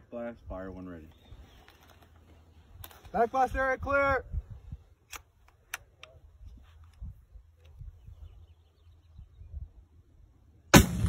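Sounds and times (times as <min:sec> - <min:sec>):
faint wind: 0:00.0 - 0:11.0
rocket launcher blast: 0:10.7 - 0:11.0.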